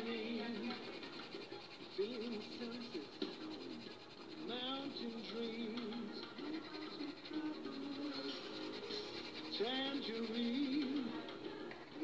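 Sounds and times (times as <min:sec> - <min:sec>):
pencil scratching on paper: 0:00.0 - 0:11.2.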